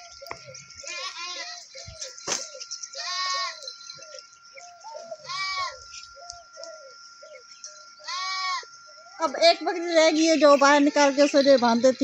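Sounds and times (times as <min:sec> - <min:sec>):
goat bleating: 0:00.8 - 0:01.8, 0:02.9 - 0:03.7, 0:05.2 - 0:05.9, 0:08.0 - 0:08.7.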